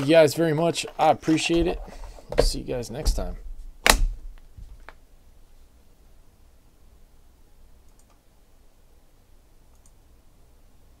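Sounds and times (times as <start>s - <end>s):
faint low room hum: 0.0s - 11.0s
small soft clicks: 7.9s - 8.2s, 9.7s - 10.0s.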